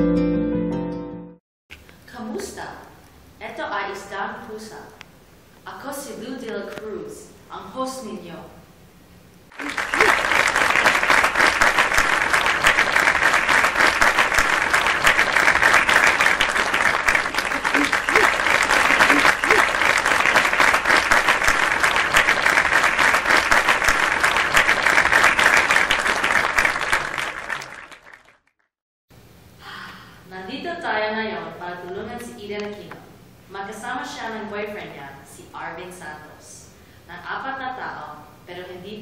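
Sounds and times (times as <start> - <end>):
audience applause: 9.5 - 28.5.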